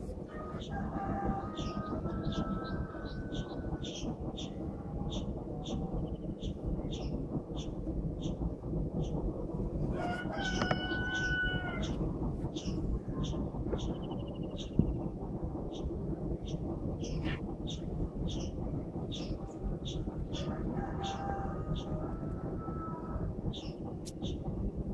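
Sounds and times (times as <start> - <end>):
low rumbling noise: 0.0 - 24.9.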